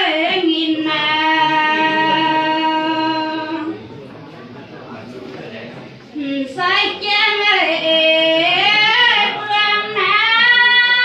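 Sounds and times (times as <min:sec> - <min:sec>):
woman singing into a microphone: 0:00.0 - 0:03.8, 0:06.1 - 0:11.0.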